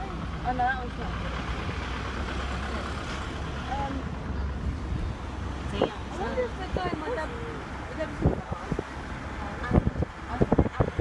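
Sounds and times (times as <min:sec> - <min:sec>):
road train engine rumbling: 0:00.0 - 0:11.0.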